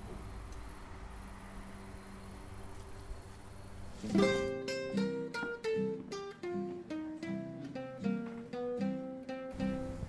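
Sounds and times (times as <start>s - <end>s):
low outdoor rumble: 0.0s - 4.6s
faint hum: 0.0s - 4.9s
plucked acoustic guitar music: 4.0s - 10.0s.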